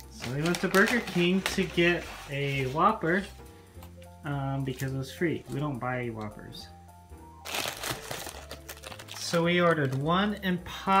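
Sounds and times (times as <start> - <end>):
paper wrapping crinkling: 0.0 - 3.3, 7.4 - 10.4
soft background music: 0.0 - 11.0.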